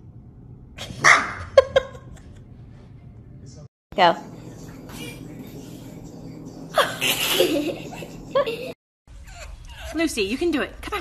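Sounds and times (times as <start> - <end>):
small dog barking: 1.0 - 1.5.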